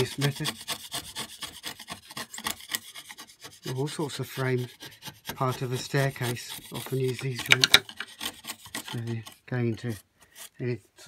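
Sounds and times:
chisel scraping wood: 0:00.0 - 0:11.0.

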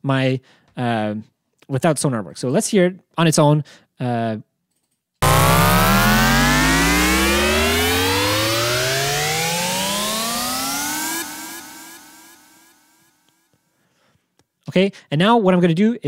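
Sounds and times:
cinematic riser with hiss: 0:05.2 - 0:13.1.

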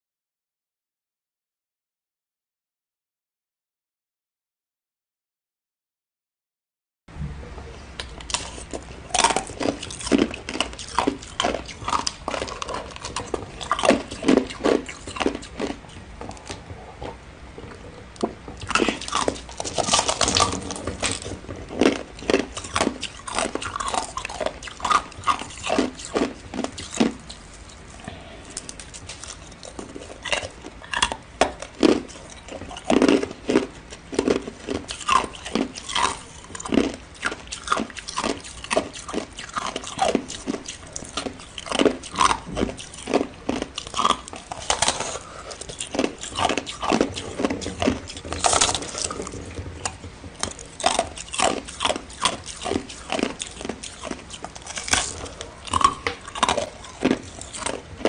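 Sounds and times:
chewing ice crunching: 0:08.0 - 0:58.0.

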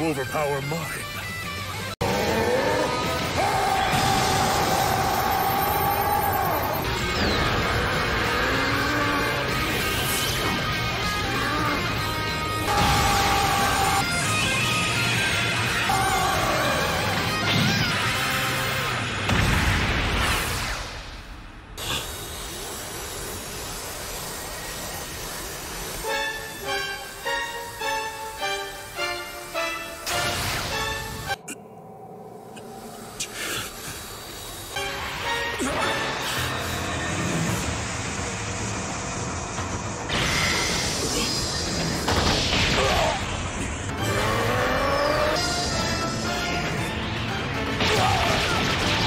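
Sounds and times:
crash sound effect: 0:19.2 - 0:21.3
background music with sustained tones: 0:24.4 - 0:49.0.

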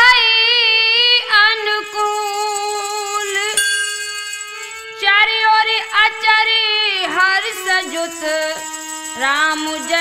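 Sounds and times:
woman singing: 0:00.0 - 0:03.8, 0:04.8 - 0:10.0
harmonium: 0:00.0 - 0:10.0.

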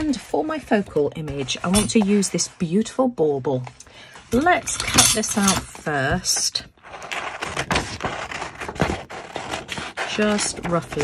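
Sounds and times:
page rustling: 0:05.9 - 0:11.0
scissors snipping paper: 0:06.2 - 0:11.0.

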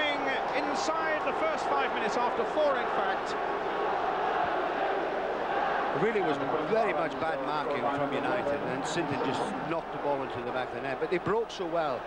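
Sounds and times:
stadium crowd voices: 0:00.0 - 0:12.0.

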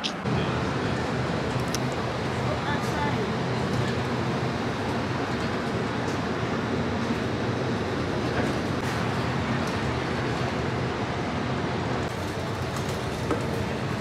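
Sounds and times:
bus engine hum: 0:00.0 - 0:14.0
road noise: 0:00.0 - 0:14.0.

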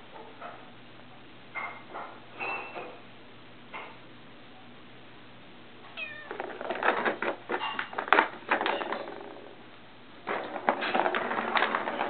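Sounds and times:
cat meowing: 0:06.0 - 0:06.4
ball rattling around plastic track: 0:06.3 - 0:09.6, 0:10.2 - 0:12.0.

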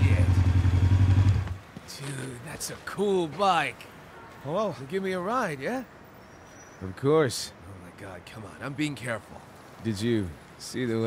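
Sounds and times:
motorcycle engine idling: 0:00.0 - 0:01.6.

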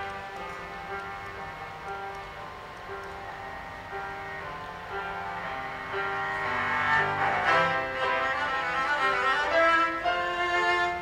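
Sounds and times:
piano accompaniment: 0:00.0 - 0:11.0
cello playing classical piece: 0:04.1 - 0:11.0.

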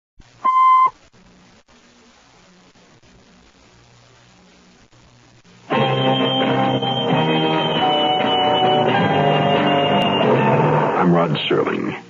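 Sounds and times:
short electronic beep: 0:00.4 - 0:00.9.

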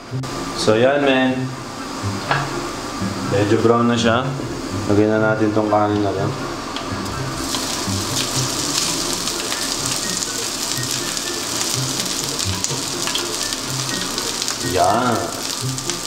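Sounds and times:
oil and garlic sizzling in a pan: 0:06.9 - 0:16.0.

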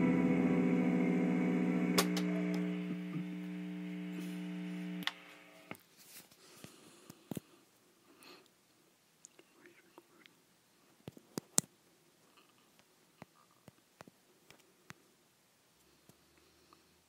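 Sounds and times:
faint room hiss: 0:00.0 - 0:17.0
small rustling noises: 0:05.7 - 0:08.5.

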